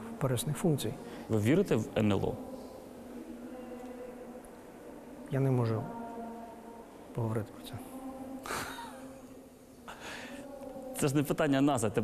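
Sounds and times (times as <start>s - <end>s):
faint steady hum: 0.0s - 12.0s
man laughing breathily: 8.4s - 9.1s.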